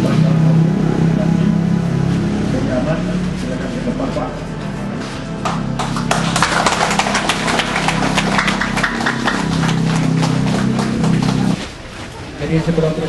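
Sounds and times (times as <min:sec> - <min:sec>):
music holding a chord: 0:02.4 - 0:11.6
crowd clapping: 0:05.4 - 0:11.6.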